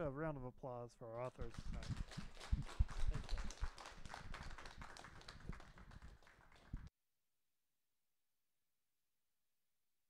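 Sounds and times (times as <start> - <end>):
audience applauding: 1.4 - 6.9.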